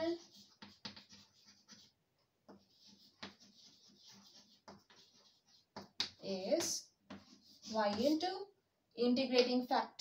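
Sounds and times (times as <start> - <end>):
chalk scratching on blackboard: 0.0 - 8.4.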